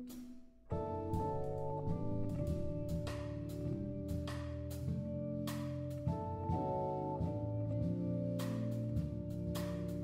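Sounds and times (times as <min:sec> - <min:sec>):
guitar: 0:00.7 - 0:10.0
held organ chords: 0:00.7 - 0:10.0.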